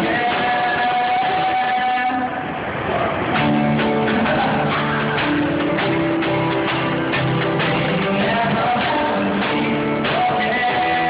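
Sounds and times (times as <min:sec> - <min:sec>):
person singing: 0:00.0 - 0:02.5, 0:03.4 - 0:11.0
acoustic guitar: 0:00.0 - 0:11.0.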